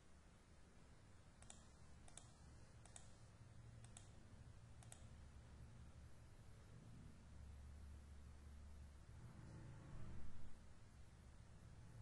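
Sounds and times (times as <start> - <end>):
low steady hum: 0.0 - 12.0
computer mouse clicks: 1.4 - 3.2, 3.8 - 4.2, 4.8 - 5.2.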